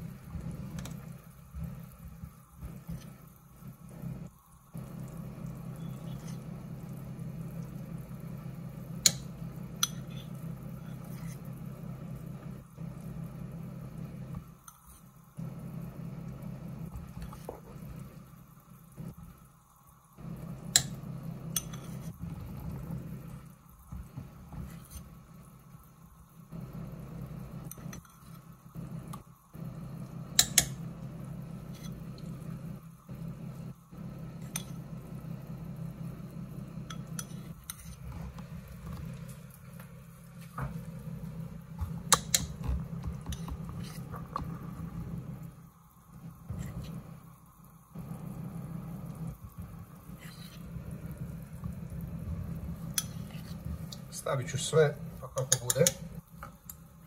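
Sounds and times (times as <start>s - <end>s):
gas burner low rumble: 0.0s - 57.0s
soup simmering: 0.0s - 57.0s.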